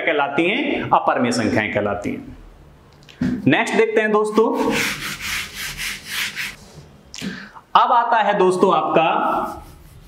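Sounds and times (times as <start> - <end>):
eraser rubbing on whiteboard: 4.3 - 6.6, 9.2 - 10.0.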